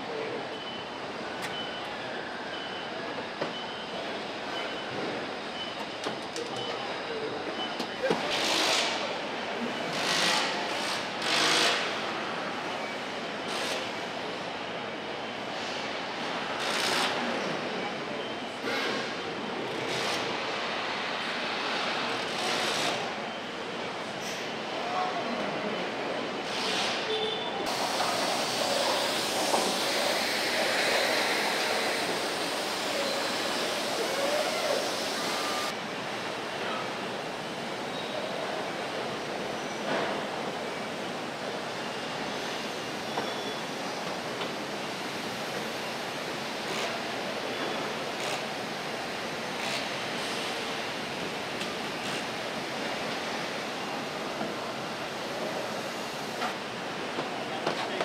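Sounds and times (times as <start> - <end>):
steady machinery noise: 7.6 - 14.4, 27.7 - 37.8
pneumatic air hisses: 27.7 - 35.7.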